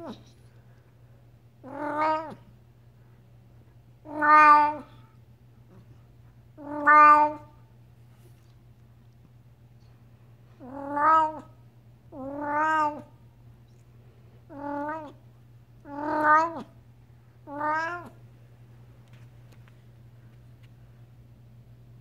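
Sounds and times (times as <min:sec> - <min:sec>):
cat meowing: 0:01.6 - 0:02.4, 0:04.0 - 0:05.0, 0:06.6 - 0:07.6, 0:10.6 - 0:13.1, 0:14.5 - 0:15.2, 0:15.8 - 0:16.7, 0:17.4 - 0:18.2.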